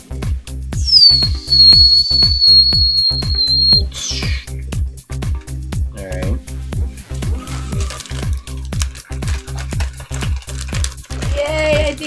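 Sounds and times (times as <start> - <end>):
high whistle-like sliding tone: 0.8 - 4.4.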